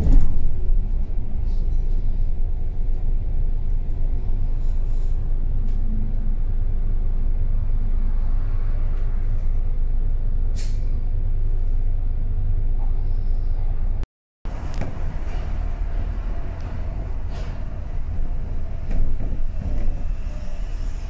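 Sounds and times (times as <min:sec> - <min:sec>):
bus engine and road noise: 0:00.0 - 0:21.0
air brakes hissing: 0:04.3 - 0:05.4, 0:10.5 - 0:11.0, 0:14.5 - 0:21.0.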